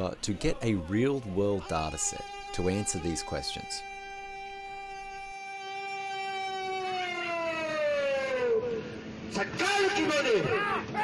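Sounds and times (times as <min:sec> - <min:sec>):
long held cry: 0:00.4 - 0:09.1.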